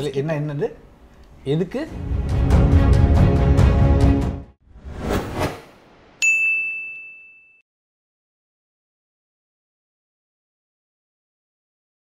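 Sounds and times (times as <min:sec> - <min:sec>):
rushing swish: 0:04.7 - 0:06.2
bright ringing ding: 0:06.2 - 0:07.6.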